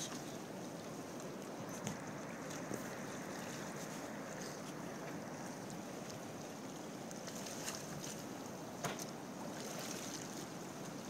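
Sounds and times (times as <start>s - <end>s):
water lapping around dock: 0.0s - 11.0s.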